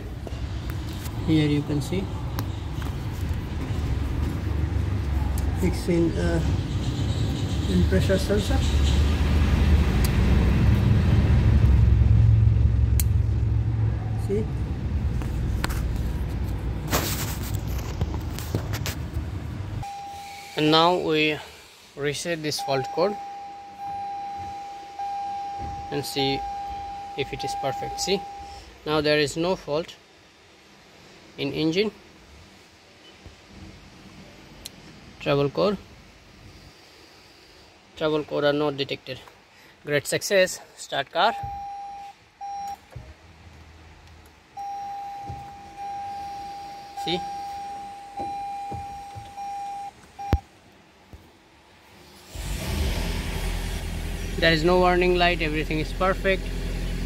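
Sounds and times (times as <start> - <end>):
car engine starting and running: 0.0 - 20.0, 52.1 - 57.0
dashboard warning chime beeping: 19.8 - 20.6, 22.6 - 28.6, 41.3 - 42.8, 44.6 - 50.4
steady electronic tone: 19.8 - 21.1.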